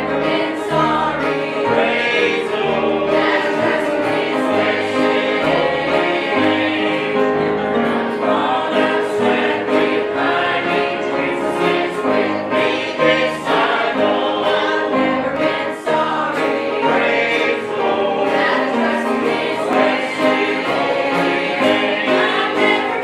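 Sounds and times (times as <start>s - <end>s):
banjo: 0.0s - 23.0s
choir singing a gospel hymn: 0.0s - 23.0s.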